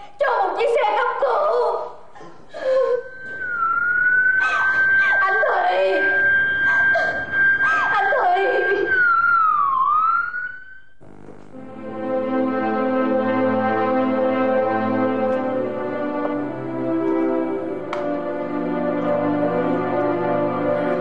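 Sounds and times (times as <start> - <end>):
ambulance siren: 3.0 - 11.0.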